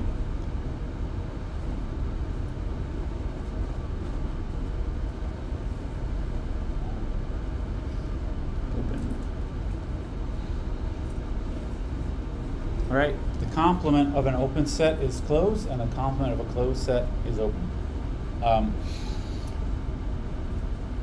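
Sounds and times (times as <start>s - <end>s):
classroom background rumble: 0.0s - 21.0s.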